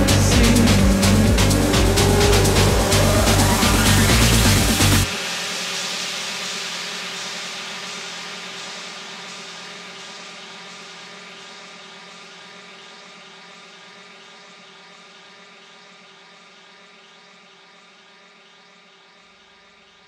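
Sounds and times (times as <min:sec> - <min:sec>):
held synth drone: 0:00.0 - 0:07.4
hissing noise wash: 0:00.0 - 0:10.4.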